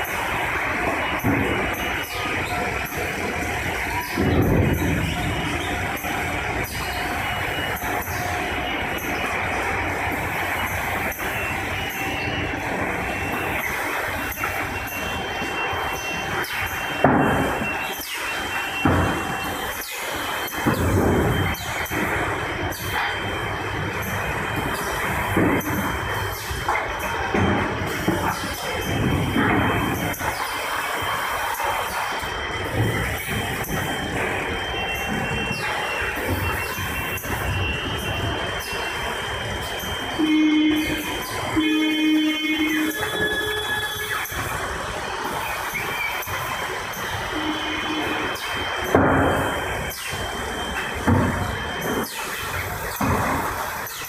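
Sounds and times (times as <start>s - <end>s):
machine clatter and knocks: 0.0s - 39.0s, 42.7s - 54.0s
conveyor and motor noise: 0.0s - 54.0s.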